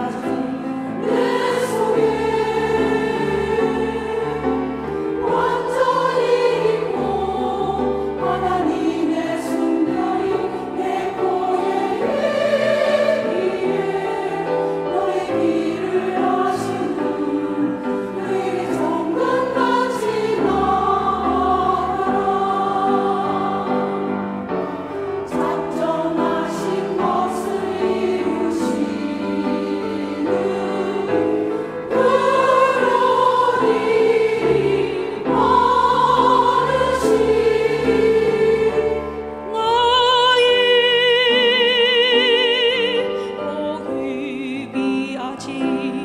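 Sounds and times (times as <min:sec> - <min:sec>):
women's choir singing: 0:00.0 - 0:46.0.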